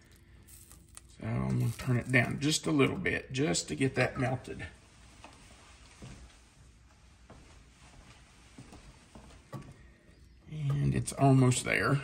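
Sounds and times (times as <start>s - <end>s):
man speaking: 1.2s - 4.8s, 10.5s - 12.0s.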